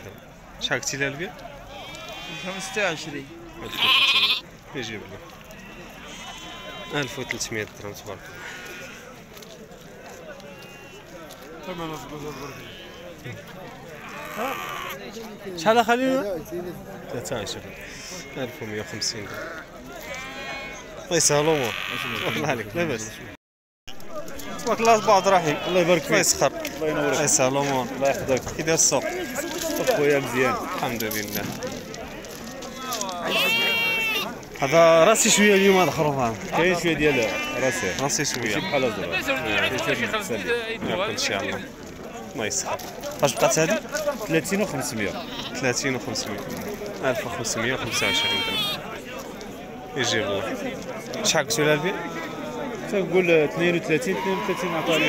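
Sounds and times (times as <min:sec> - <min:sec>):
men's voices: 0:00.0 - 0:55.0
sheep bleating: 0:01.6 - 0:04.5, 0:05.3 - 0:15.2, 0:17.3 - 0:23.4, 0:24.3 - 0:26.4, 0:29.1 - 0:31.0, 0:32.3 - 0:40.2, 0:44.8 - 0:45.9, 0:47.7 - 0:48.9, 0:53.9 - 0:55.0.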